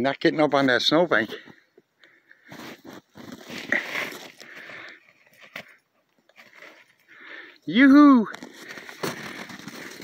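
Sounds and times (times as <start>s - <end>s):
crunching and scuffing in snow: 2.4s - 7.0s, 8.3s - 10.0s.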